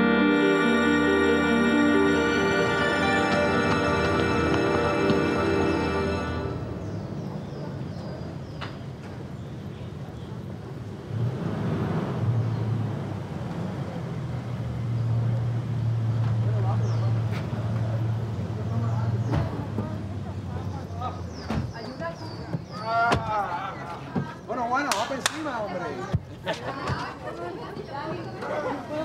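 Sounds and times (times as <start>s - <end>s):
street traffic: 0.0s - 29.0s.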